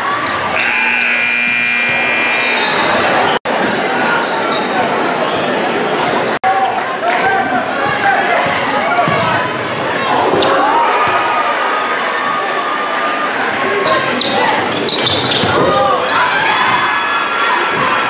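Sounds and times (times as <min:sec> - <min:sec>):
crowd talking: 0:00.0 - 0:18.0
sneakers squeaking: 0:00.1 - 0:05.5, 0:13.8 - 0:15.7.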